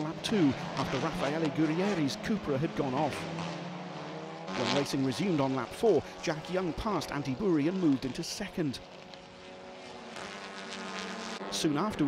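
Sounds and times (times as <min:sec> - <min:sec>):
racing car engines droning: 0:00.0 - 0:12.0.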